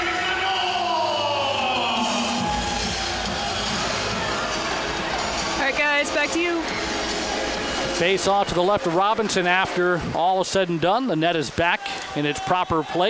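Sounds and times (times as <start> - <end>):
raised voice: 0.0 - 2.7
music over pa system: 0.0 - 11.5
echoing indistinct voices: 0.0 - 13.0.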